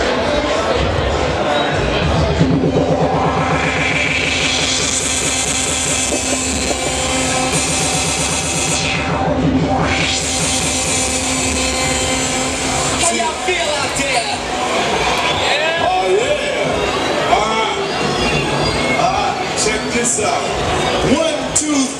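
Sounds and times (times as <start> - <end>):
dj mixing records over pa: 2.7 - 8.9.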